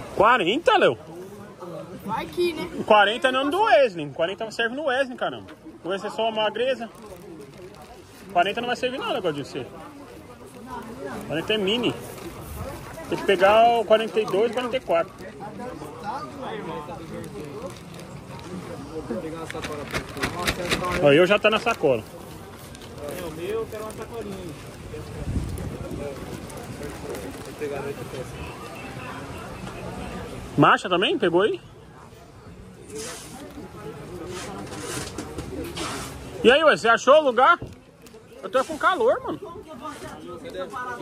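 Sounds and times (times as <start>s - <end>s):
background chatter: 0.0s - 41.0s
clothes and plastic rustling: 0.0s - 41.0s.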